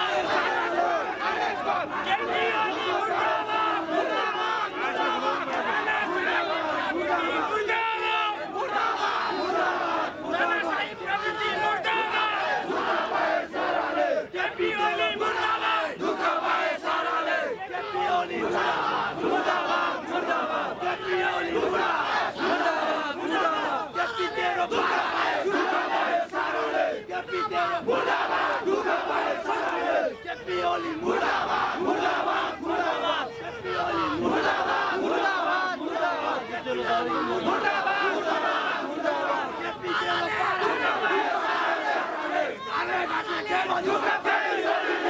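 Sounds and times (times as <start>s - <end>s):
crowd of men shouting slogans: 0.0s - 45.0s.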